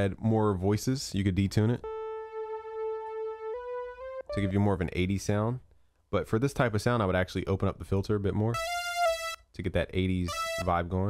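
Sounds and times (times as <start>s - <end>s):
synth sawtooth lead: 1.8s - 4.8s.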